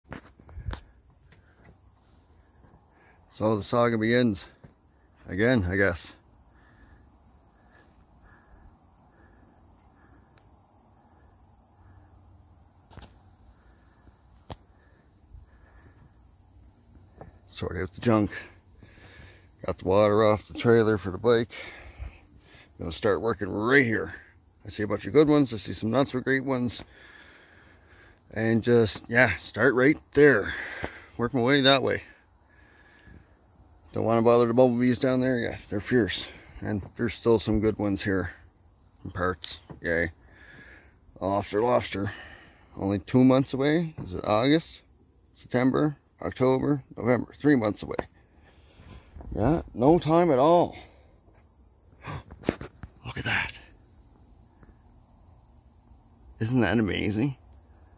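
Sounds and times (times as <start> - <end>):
insects trilling: 0.1 - 57.9.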